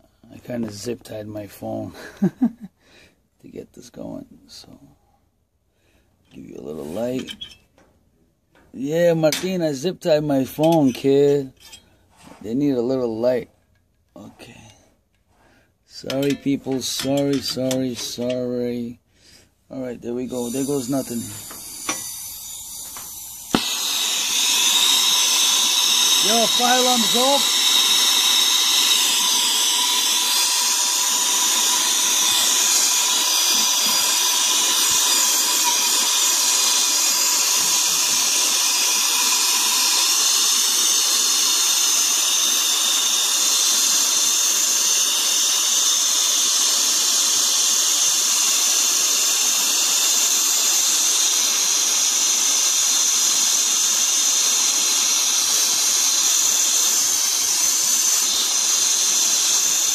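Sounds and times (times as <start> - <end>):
torch flame hissing: 20.0 - 59.9.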